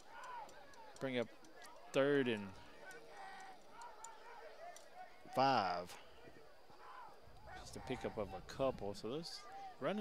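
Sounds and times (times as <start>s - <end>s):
faint clicks: 0.0s - 5.4s
faint voices murmuring: 0.0s - 10.0s.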